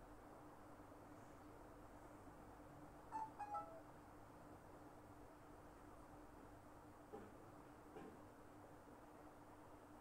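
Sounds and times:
high-pitched chirps: 3.1 - 3.8.

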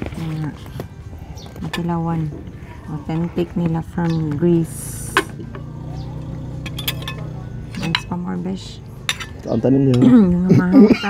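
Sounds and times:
low motor hum: 0.0 - 10.7
cutlery clinking on plates: 6.6 - 8.2, 9.0 - 10.2.

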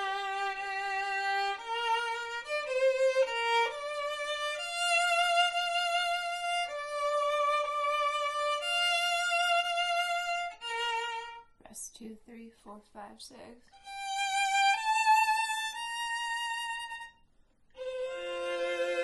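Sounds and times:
solo violin playing sustained notes: 0.0 - 11.5, 13.7 - 17.2, 17.8 - 19.0.

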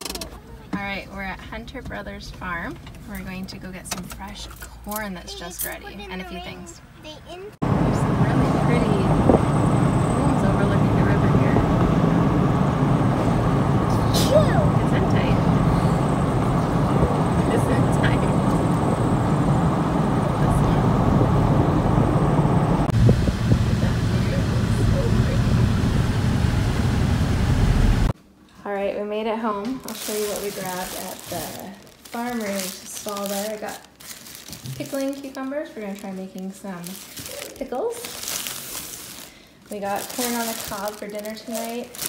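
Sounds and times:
car road and wind noise: 7.6 - 28.2.

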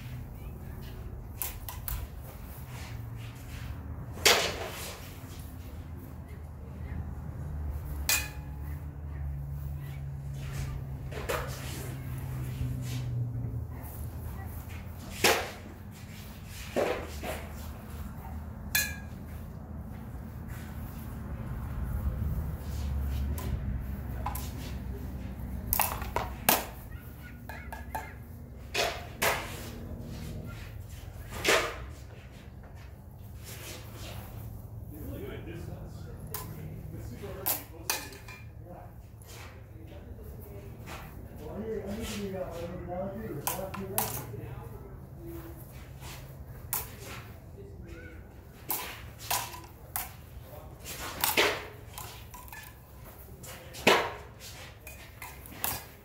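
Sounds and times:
swords clashing: 8.0 - 8.6, 18.7 - 19.2.

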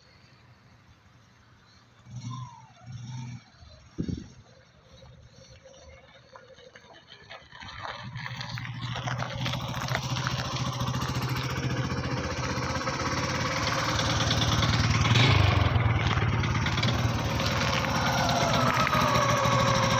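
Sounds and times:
motorcycle engine idling: 0.6 - 19.9.

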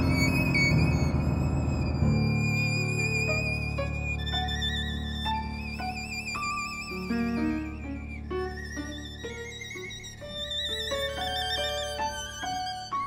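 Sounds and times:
grand piano: 0.0 - 13.0
violin playing quick melody: 0.0 - 13.0.

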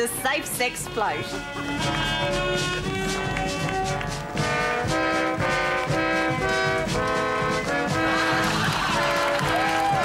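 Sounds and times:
brass band playing: 0.9 - 10.0.

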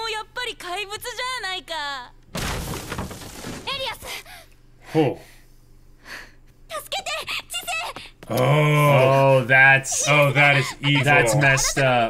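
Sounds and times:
shattering crash sound effect: 2.4 - 3.8.

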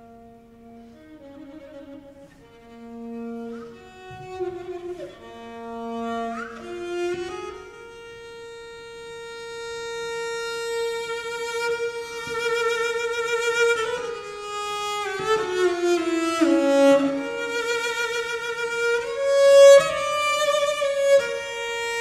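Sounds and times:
cello bowed notes with vibrato: 0.0 - 22.0.

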